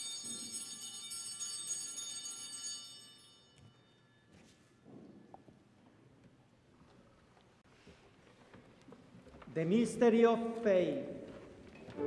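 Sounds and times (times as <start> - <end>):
altar bells ringing: 0.0 - 4.4.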